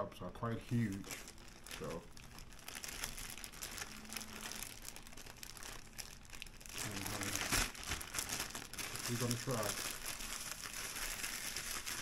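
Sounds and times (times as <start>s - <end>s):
plastic bag crinkling: 0.6s - 12.0s.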